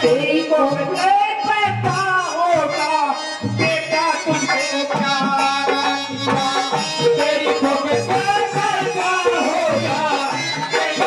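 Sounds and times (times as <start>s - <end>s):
live folk music: 0.0s - 11.0s.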